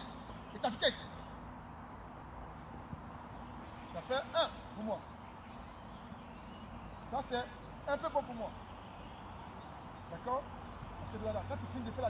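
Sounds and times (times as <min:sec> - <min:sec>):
low background noise: 0:00.0 - 0:12.0.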